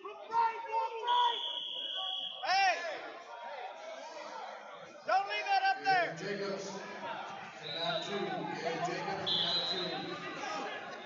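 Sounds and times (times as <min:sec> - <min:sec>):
chatter in a gym: 0:00.0 - 0:11.0
referee whistle: 0:01.0 - 0:02.6, 0:07.6 - 0:08.5, 0:09.1 - 0:10.7.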